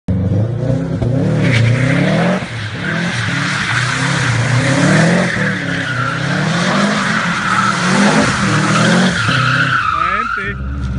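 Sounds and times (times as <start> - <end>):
car engine revving: 0.1 - 10.9
tyres squealing: 2.8 - 10.7.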